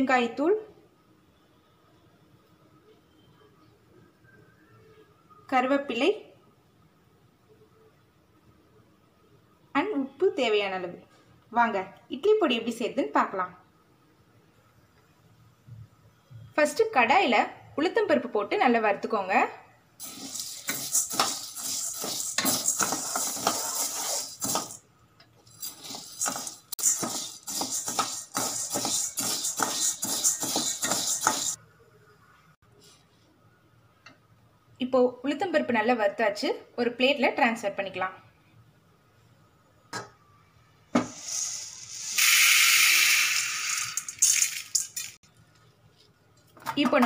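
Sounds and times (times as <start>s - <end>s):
ladle scraping lentils in metal pan: 20.0s - 24.8s, 25.5s - 31.6s
lentils rattling onto a plate: 43.0s - 45.2s.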